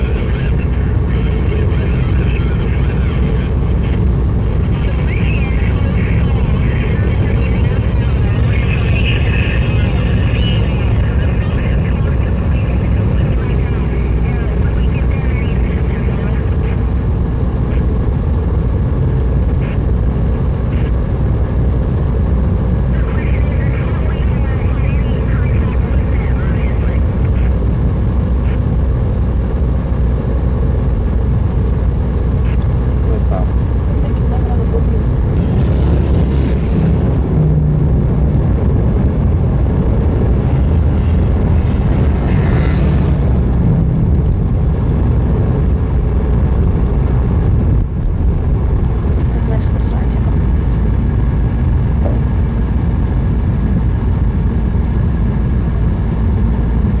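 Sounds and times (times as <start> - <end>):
engine and traffic: 0.0 - 57.0
wind and road noise: 0.0 - 57.0.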